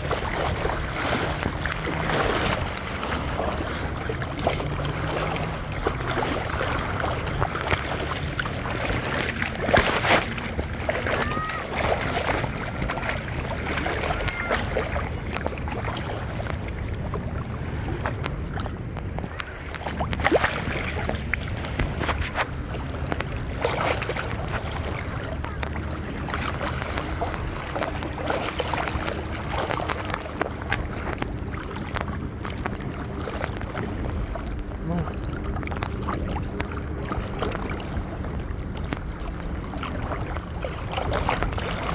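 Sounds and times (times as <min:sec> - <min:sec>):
boat motor hum: 0:00.0 - 0:41.9
sea water splashing: 0:00.0 - 0:41.9
wind on microphone: 0:00.0 - 0:41.9.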